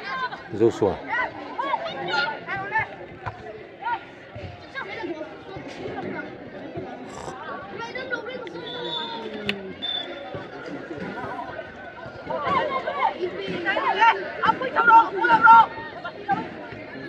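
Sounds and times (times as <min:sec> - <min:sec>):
people calling out and chattering: 0:00.0 - 0:17.0.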